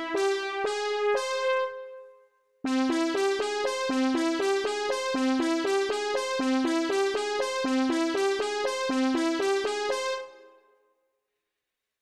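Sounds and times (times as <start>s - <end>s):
synthesizer keyboard notes: 0.0s - 2.0s, 2.7s - 10.5s.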